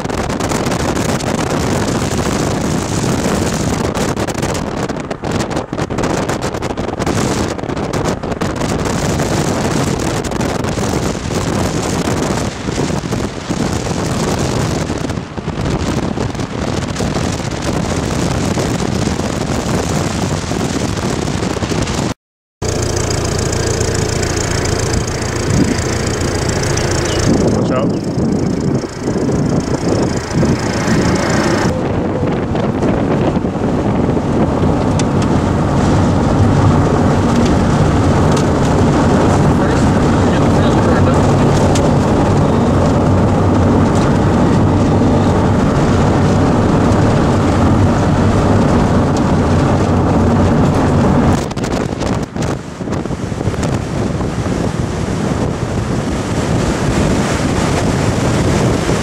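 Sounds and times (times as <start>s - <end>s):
car road and engine noise: 0.0s - 59.0s
wind buffeting microphone: 0.0s - 59.0s
steady low hum: 22.6s - 33.6s.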